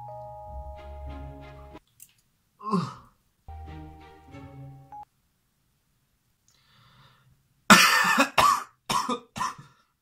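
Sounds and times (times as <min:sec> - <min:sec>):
person coughing: 0:07.7 - 0:09.8.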